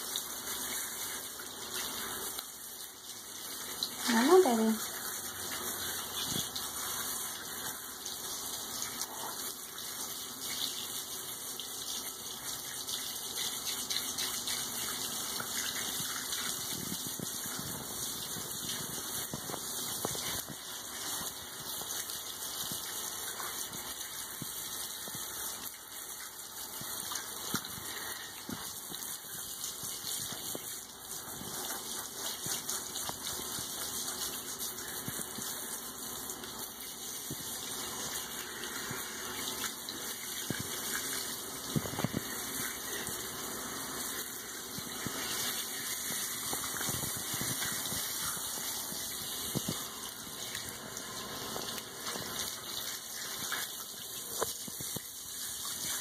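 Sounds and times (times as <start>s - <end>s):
shower sprayer running: 0.0s - 56.0s
water splashing into bathtub: 0.0s - 56.0s.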